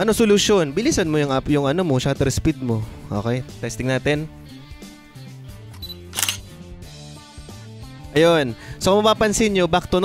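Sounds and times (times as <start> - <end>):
quiet background music: 0.0 - 10.0
camera shutter click: 5.7 - 6.5.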